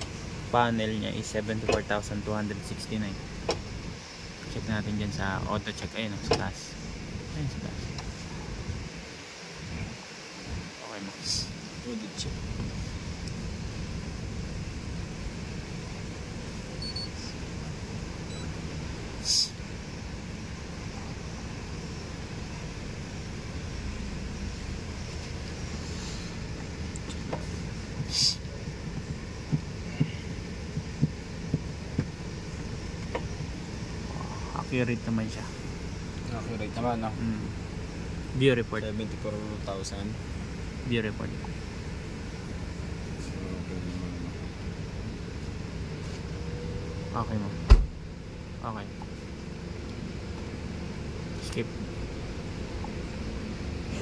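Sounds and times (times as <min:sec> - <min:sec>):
car cabin hum: 0:00.0 - 0:09.1, 0:11.9 - 0:54.0
faint steady tone: 0:00.0 - 0:54.0
brief hiss: 0:19.2 - 0:19.6, 0:25.7 - 0:26.4, 0:28.1 - 0:28.4.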